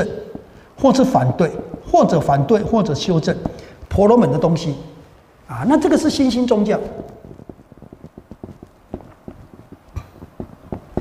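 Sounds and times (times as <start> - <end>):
marker writing on whiteboard: 0.0 - 3.7, 5.9 - 11.0.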